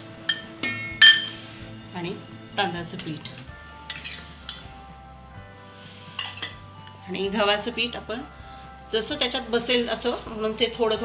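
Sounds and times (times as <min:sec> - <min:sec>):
background music: 0:00.0 - 0:11.0
spoon clinking on steel bowl: 0:00.2 - 0:01.4, 0:03.0 - 0:04.7, 0:06.2 - 0:06.6.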